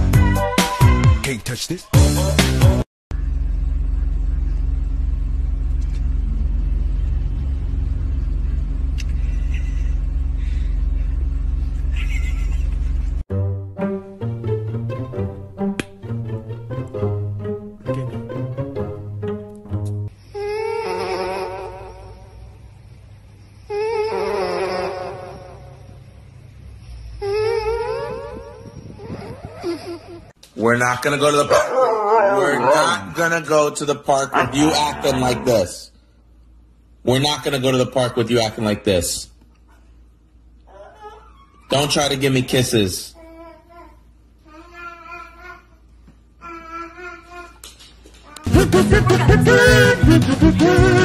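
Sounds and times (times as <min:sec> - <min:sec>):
husky howling: 0:31.5 - 0:33.2, 0:34.3 - 0:35.7.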